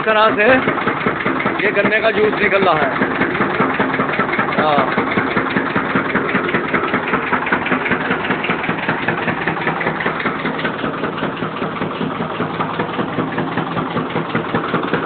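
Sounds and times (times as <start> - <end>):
sugarcane crusher engine running: 0.0 - 15.0.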